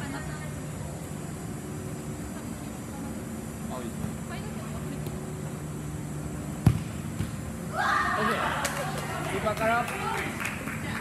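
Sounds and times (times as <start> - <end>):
steady low hum: 0.0 - 11.0
ball kicked thud: 6.6 - 7.4.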